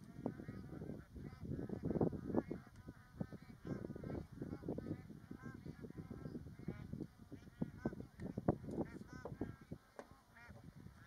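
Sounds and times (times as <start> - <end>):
geese honking: 0.2 - 11.0.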